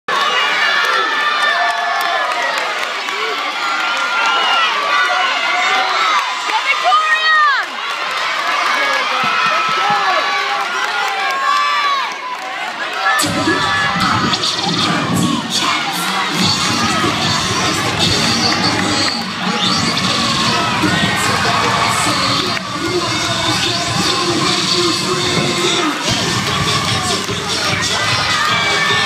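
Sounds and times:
arena crowd cheering: 0.1 - 29.0
music: 13.2 - 29.0.

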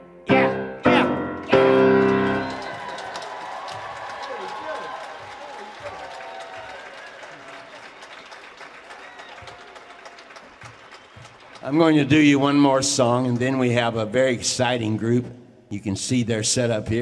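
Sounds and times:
audience applause: 2.0 - 12.6.

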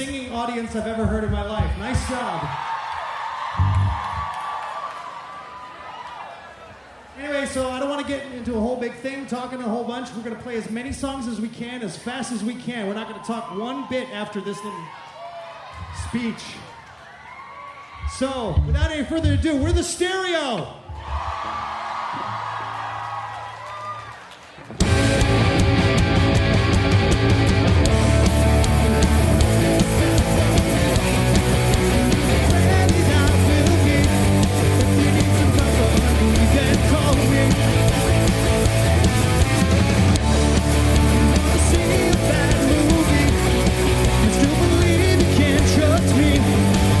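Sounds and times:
audience cheering and whooping: 2.1 - 7.1, 13.0 - 18.6, 20.9 - 27.2
held electric guitar and bass notes: 3.6 - 4.3, 18.5 - 19.5, 24.7 - 47.0
rock band playing: 24.7 - 47.0.

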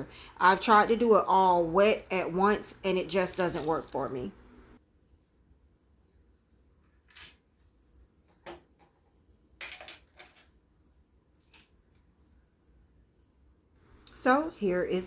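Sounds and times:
handling clicks and clinks: 3.4 - 4.2.

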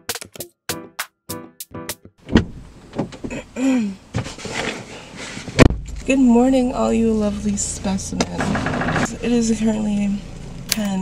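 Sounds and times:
bumps and rustling: 2.2 - 9.2
heavy thump: 2.3 - 3.4, 5.6 - 6.5.

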